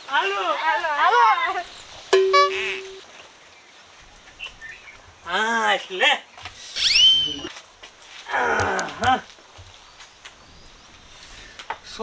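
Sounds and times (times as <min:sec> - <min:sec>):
steady single-pitched tone: 0:02.1 - 0:03.0.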